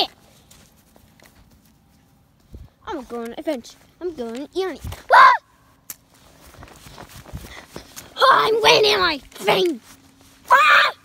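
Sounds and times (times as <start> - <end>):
footsteps running on grass: 0.0 - 5.2, 6.0 - 11.0.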